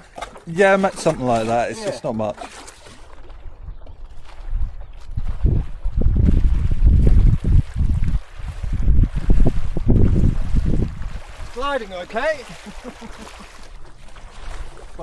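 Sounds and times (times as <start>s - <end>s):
wind buffeting microphone: 3.1s - 12.6s.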